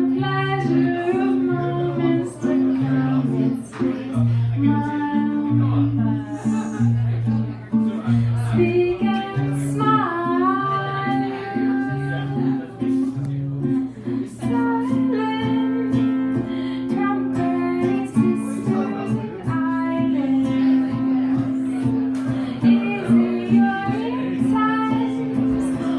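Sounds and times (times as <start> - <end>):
person singing: 0.0 - 7.2, 8.1 - 13.3, 13.9 - 25.9
acoustic guitar chords: 0.0 - 25.9.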